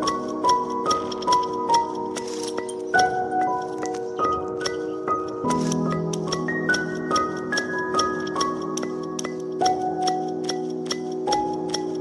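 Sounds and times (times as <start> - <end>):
ticking beat: 0.0 - 12.0.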